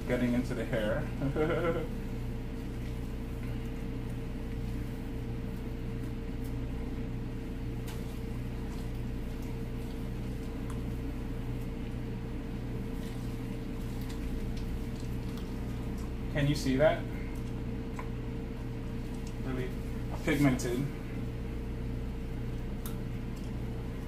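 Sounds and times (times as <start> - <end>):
mechanical hum with whine: 0.0 - 24.0.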